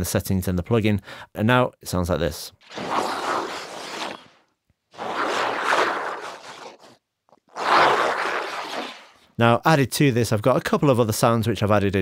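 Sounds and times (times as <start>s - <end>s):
zombie growls: 2.7s - 4.3s, 5.0s - 7.0s.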